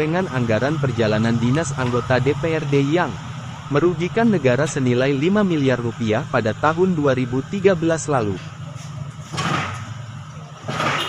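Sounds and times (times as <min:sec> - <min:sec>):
vehicle engine idling: 0:00.0 - 0:10.8.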